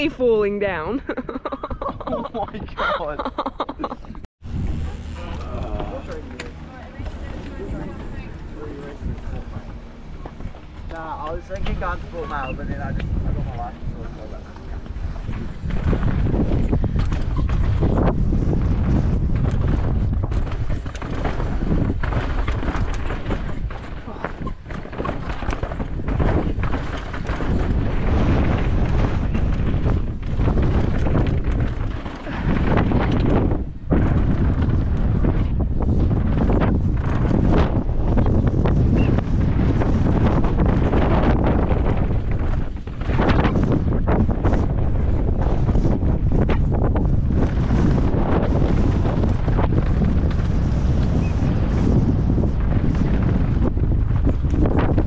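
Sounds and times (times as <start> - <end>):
wind buffeting microphone: 0.0 - 55.0
bike rattling and knocking: 4.4 - 55.0
tyres on loose dirt: 4.4 - 55.0.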